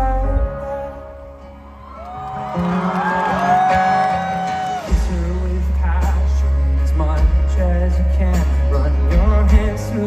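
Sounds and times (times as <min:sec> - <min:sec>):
acoustic guitar song: 0:00.0 - 0:10.0
crowd whooping: 0:01.5 - 0:05.8.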